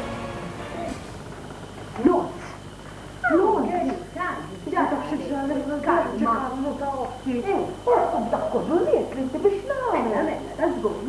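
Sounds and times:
woman speaking: 2.0 - 2.6, 3.2 - 11.0.

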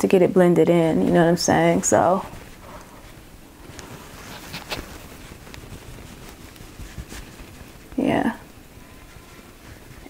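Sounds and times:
makeup sponge dabbing skin: 1.2 - 10.0.

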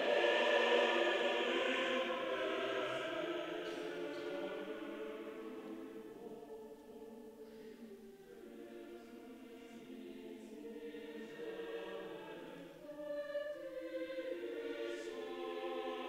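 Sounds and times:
choir singing in harmony: 0.0 - 16.0.

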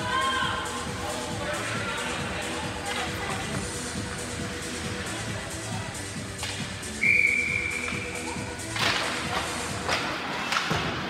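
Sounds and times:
arena music: 0.0 - 11.0
referee's whistle blast: 7.0 - 8.0.

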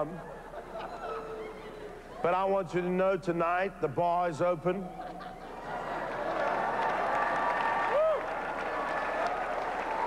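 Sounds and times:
large audience applauding: 6.0 - 10.0.

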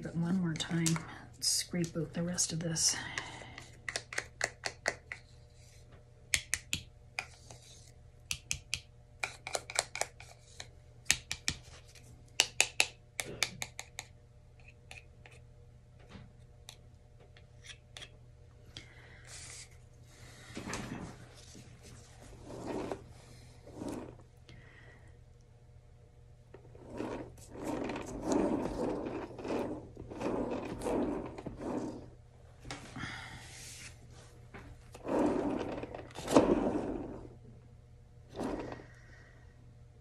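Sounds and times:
plastic tool scraping wet paint: 26.8 - 32.1, 35.0 - 37.2.

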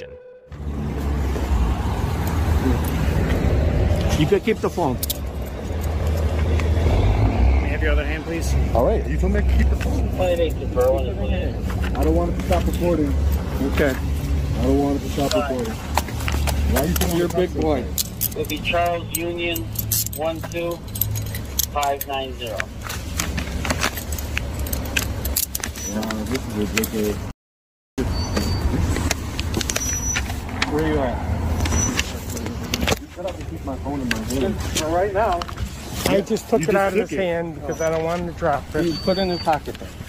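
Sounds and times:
light metallic jingling: 16.6 - 22.6, 23.7 - 27.2.

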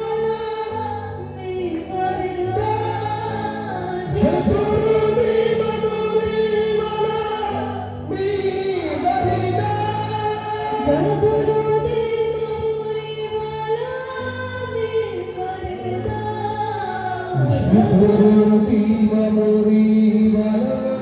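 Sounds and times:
man singing into microphone: 1.9 - 12.1, 16.8 - 21.0.

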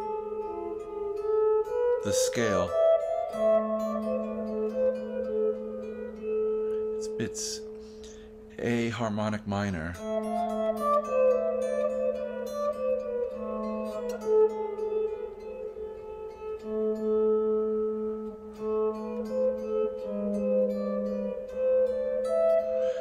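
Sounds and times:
electric guitar playing: 0.0 - 23.0.

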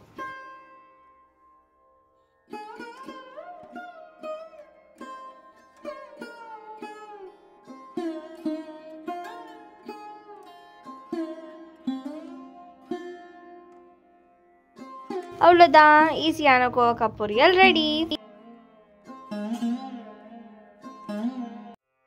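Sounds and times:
plucked string instrument melody: 0.0 - 21.8.

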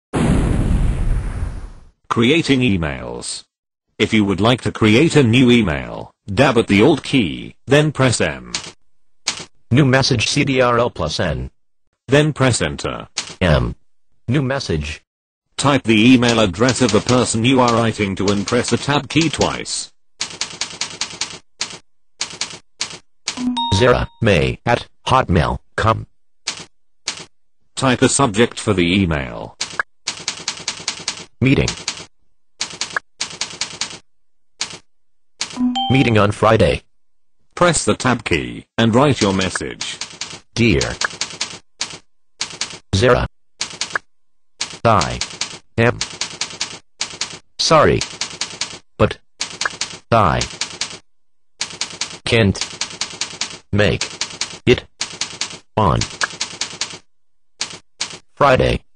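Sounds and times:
computer keyboard typing: 8.5 - 9.5, 16.2 - 19.4, 20.2 - 23.8, 26.5 - 27.3, 29.6 - 34.0, 39.2 - 42.8, 43.6 - 47.4, 48.0 - 48.8, 49.4 - 51.0, 51.6 - 58.2
keyboard typing clicks: 20.2 - 24.2, 35.4 - 36.1, 43.6 - 47.4, 49.4 - 51.0, 51.6 - 57.0.

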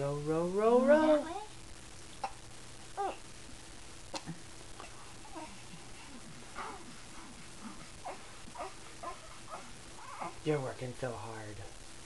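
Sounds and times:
baby grunting and cooing: 3.0 - 3.2.

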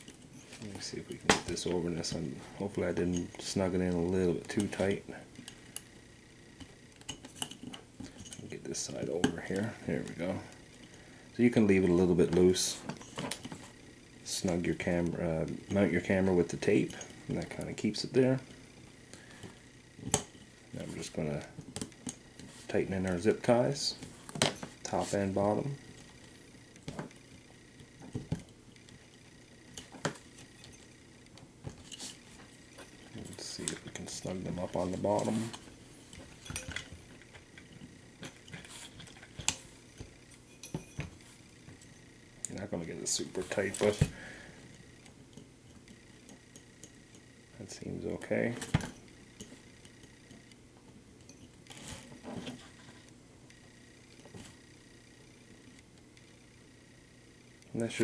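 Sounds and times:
faint steady hum: 0.0 - 58.0
handling rustles: 14.4 - 47.0.

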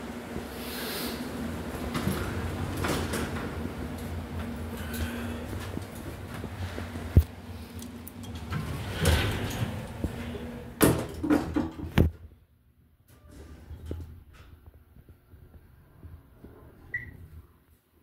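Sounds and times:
elevator doors sliding: 0.0 - 12.1
doors shutting with a thud: 8.2 - 12.2.

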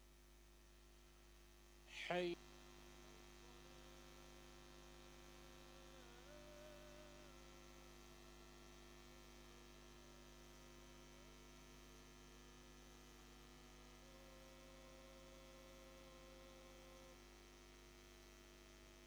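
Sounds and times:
faint mains hum: 0.0 - 19.0.

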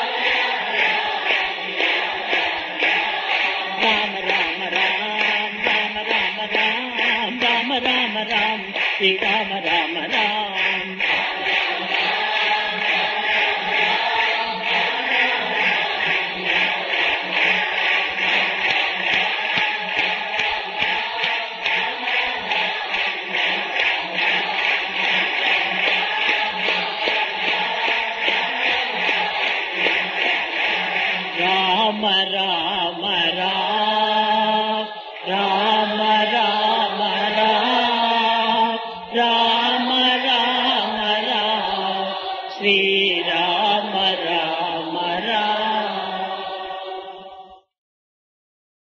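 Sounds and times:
group singing devotional song: 0.0 - 47.7.

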